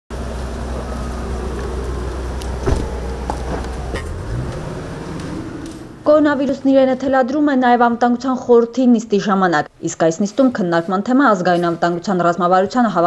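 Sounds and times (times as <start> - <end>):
car engine running: 0.1 - 6.5.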